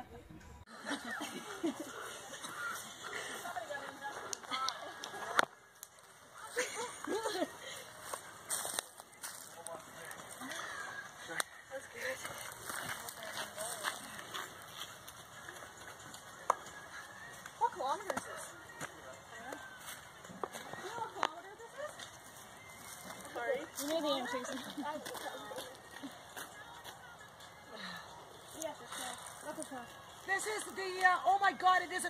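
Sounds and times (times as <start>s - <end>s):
distant people talking and calling: 0.0s - 32.0s.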